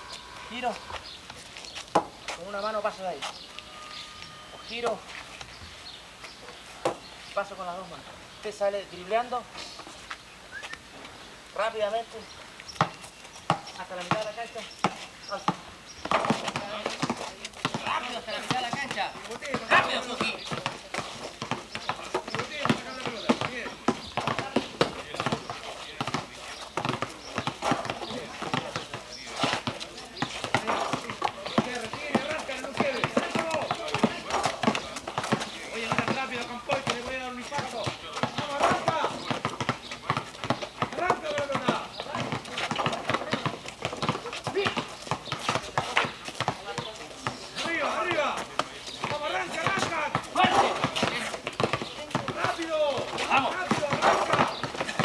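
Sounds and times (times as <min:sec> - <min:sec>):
indistinct voices: 0:00.0 - 0:01.6
basketballs bouncing on hard court: 0:12.8 - 0:55.0.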